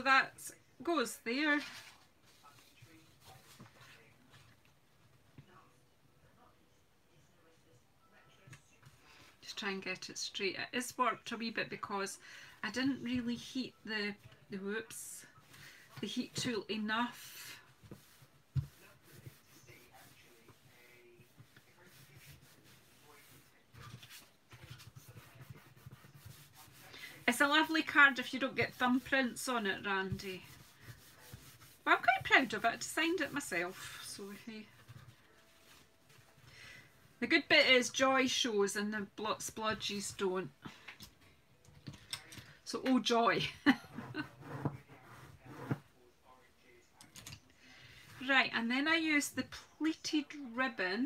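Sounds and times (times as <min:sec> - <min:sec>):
hands rubbing paper card: 0:17.2 - 0:36.3.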